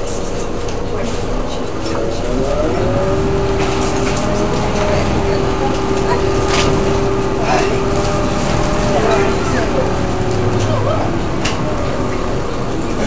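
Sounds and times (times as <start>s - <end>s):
bus engine whine: 0.0s - 13.0s.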